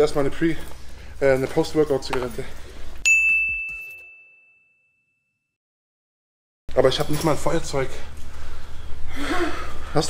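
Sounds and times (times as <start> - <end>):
bell ding: 3.0 - 5.5.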